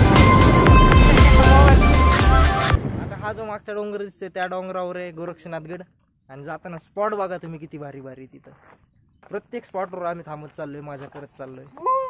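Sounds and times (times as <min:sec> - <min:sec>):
men talking: 0:09.3 - 0:11.8
man whooping: 0:11.8 - 0:12.0.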